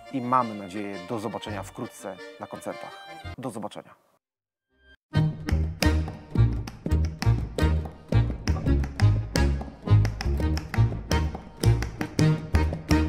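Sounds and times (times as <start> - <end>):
violin accordion and bass trio: 0.0 - 3.4, 5.1 - 13.0.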